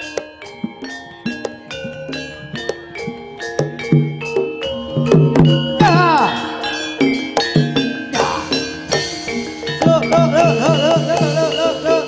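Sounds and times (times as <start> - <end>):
gamelan metal percussion: 0.0 - 12.0.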